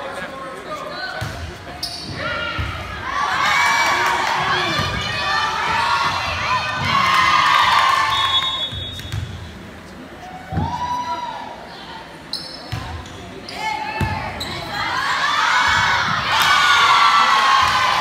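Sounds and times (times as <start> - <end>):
crowd voices and cheering: 0.0 - 18.0
players shouting: 13.6 - 18.0.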